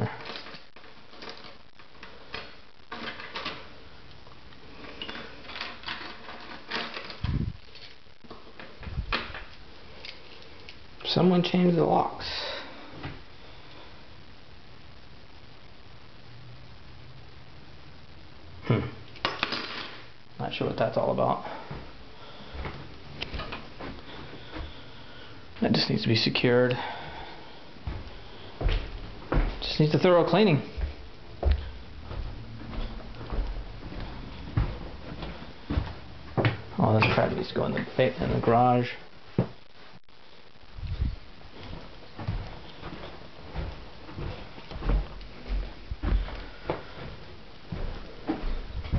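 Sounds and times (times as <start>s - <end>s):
background hiss: 0.0s - 48.9s
low thumps: 30.8s - 36.7s, 47.7s - 48.9s.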